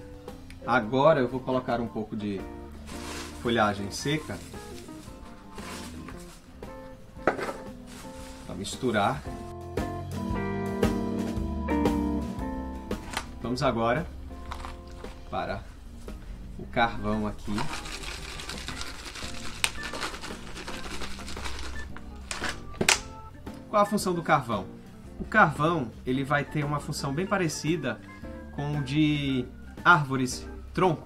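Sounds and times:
background music held notes: 0:00.0 - 0:31.0
dry leaves crackling: 0:02.8 - 0:06.4, 0:07.8 - 0:08.6, 0:17.4 - 0:22.4
charcoal pieces clicking and rattling: 0:17.6 - 0:22.6.

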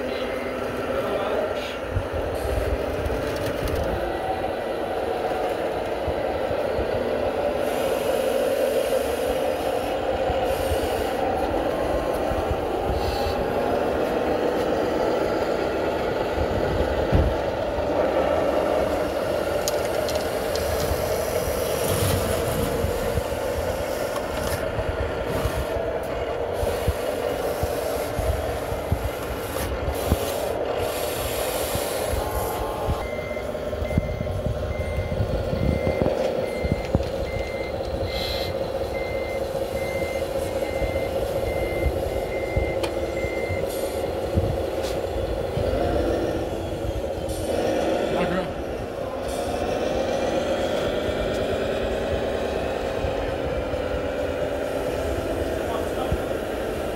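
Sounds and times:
model motors and hydraulics humming: 0:00.0 - 0:56.9
gravel scraping and rattling: 0:19.6 - 0:23.2
reversing beep: 0:32.9 - 0:44.3.

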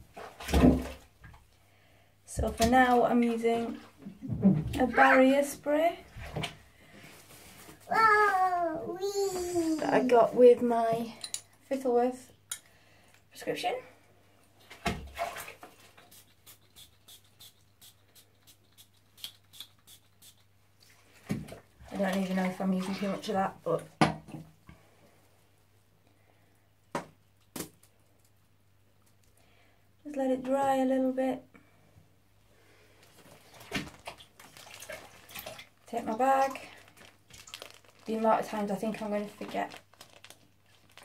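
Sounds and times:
bath water splashing: 0:00.0 - 0:01.5, 0:02.4 - 0:07.1, 0:14.6 - 0:24.1, 0:33.1 - 0:41.0
spray can hissing: 0:16.1 - 0:20.4.

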